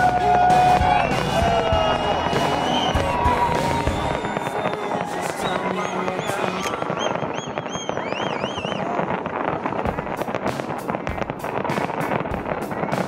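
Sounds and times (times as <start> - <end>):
high wavering firework whistles: 0.0 - 9.1
fireworks bursting and crackling: 0.0 - 13.0.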